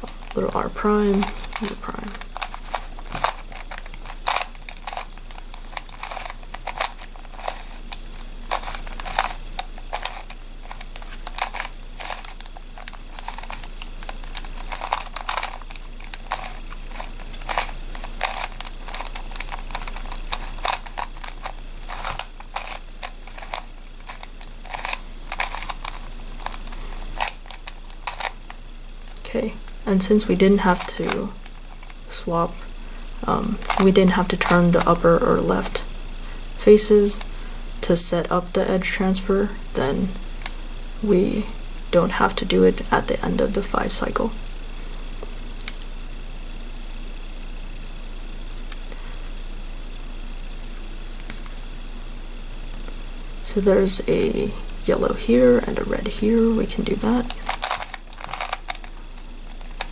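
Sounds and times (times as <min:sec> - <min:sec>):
plastic puzzle clicking as twisted: 0:01.2 - 0:07.8, 0:08.5 - 0:28.5, 0:57.3 - 0:59.9.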